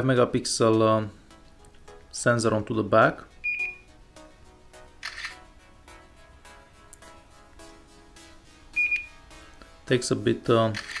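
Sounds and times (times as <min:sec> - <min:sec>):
faint background music: 0:00.0 - 0:11.0
short high beep: 0:03.5 - 0:03.8, 0:08.8 - 0:09.1
camera shutter sound: 0:05.0 - 0:05.4, 0:10.7 - 0:11.0.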